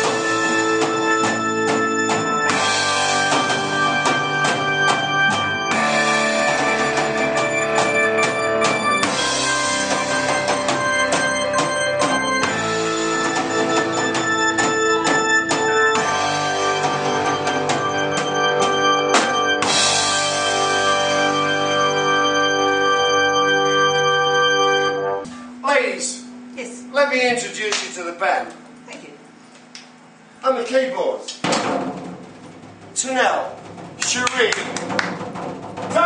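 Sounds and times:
drum kit: 0.0s - 21.9s, 31.3s - 36.0s
live band playing: 0.0s - 25.6s.

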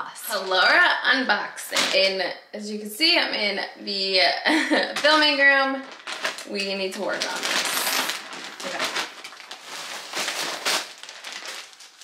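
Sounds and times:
plastic packaging crinkling: 4.9s - 12.0s.

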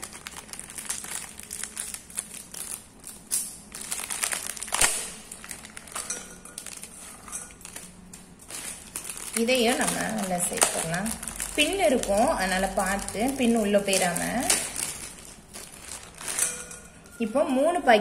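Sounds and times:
plastic bag crinkling: 0.0s - 17.3s
dried fish rustling into metal bowl: 5.4s - 17.2s.

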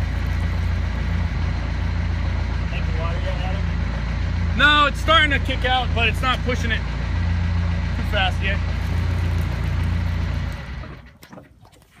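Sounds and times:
diesel engine humming: 0.0s - 11.2s.

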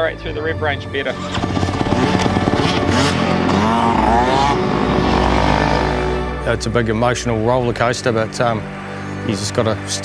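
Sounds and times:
motocross bike engine revving: 1.1s - 6.5s.

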